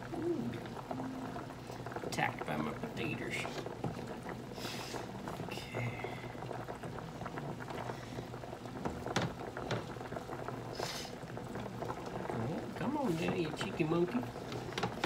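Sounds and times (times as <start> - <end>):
water boiling and bubbling: 0.0 - 15.0.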